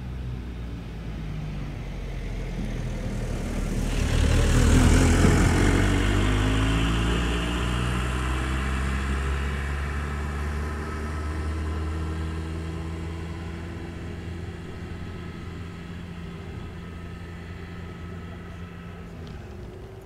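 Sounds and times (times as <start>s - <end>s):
engine passing by: 0.0s - 20.0s.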